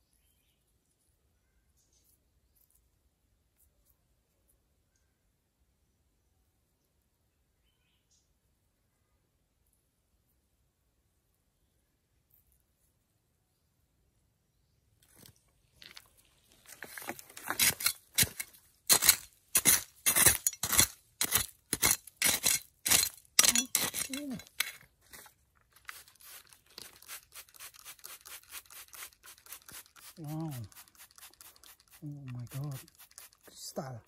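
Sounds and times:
trowel scraping gritty soil: 15.0s - 34.0s.

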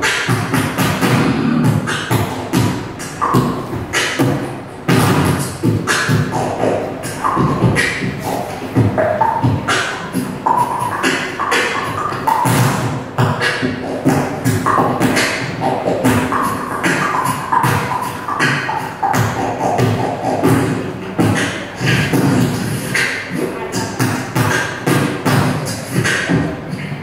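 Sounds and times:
beatboxing into microphone: 0.0s - 27.0s.

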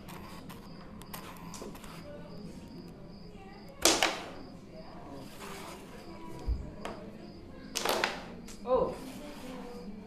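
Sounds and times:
carrom pieces clattering: 3.8s - 4.4s, 7.7s - 8.3s.

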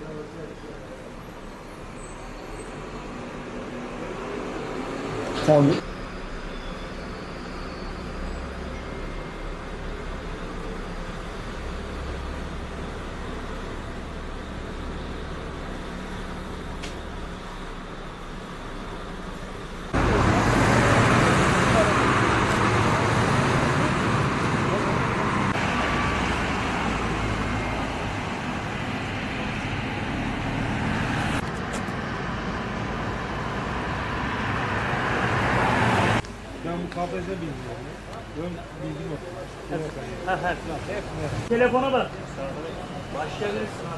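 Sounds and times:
road traffic noise: 0.0s - 43.9s.

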